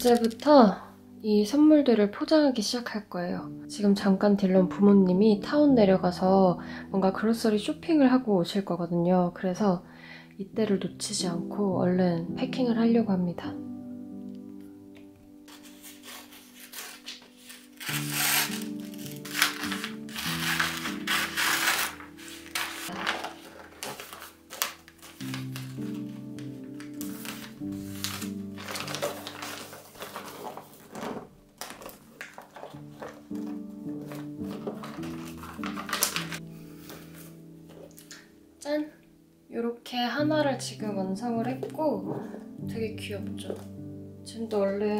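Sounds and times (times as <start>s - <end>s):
wrapping paper crinkling: 0.0s - 0.5s, 15.5s - 38.3s
background music with held chords: 0.0s - 44.9s.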